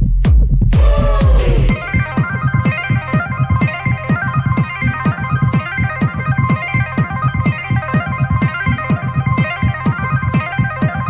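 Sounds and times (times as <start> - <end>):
kick drum: 0.0 - 6.7
high synth melody: 1.5 - 11.0.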